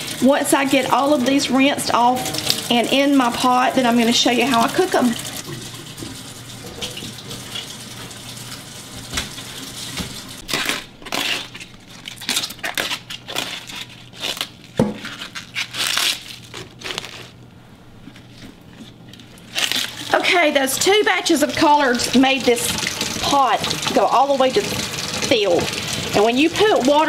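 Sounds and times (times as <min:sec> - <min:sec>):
leaves tearing and crunching: 0:10.4 - 0:17.4, 0:19.4 - 0:20.1.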